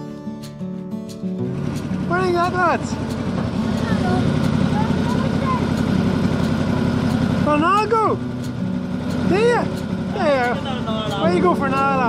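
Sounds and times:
small engine idling: 1.0s - 12.0s.

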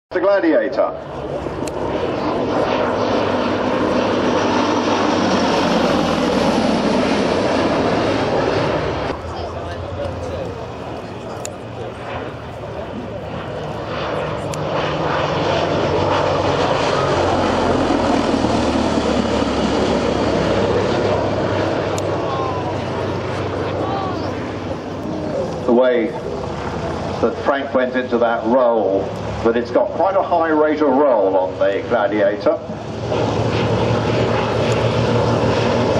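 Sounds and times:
radial aircraft engine: 0.1s - 35.9s.

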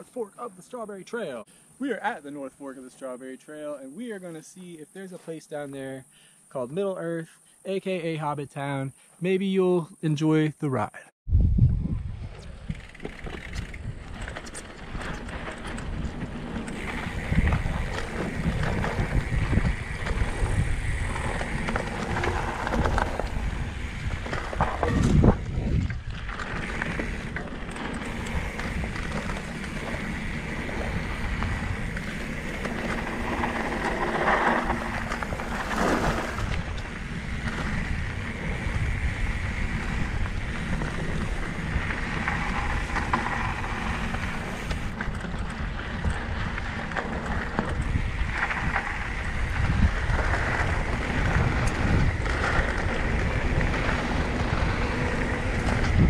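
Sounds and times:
wind rushing over microphone: 11.3s - 56.0s
bike tyres rumbling and rattling: 11.7s - 56.0s.

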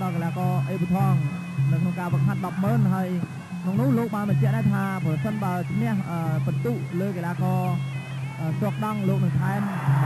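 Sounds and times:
commentator talking: 0.0s - 7.8s, 8.4s - 10.0s
crowd noise: 0.0s - 10.0s
traditional fight music: 0.0s - 10.0s.

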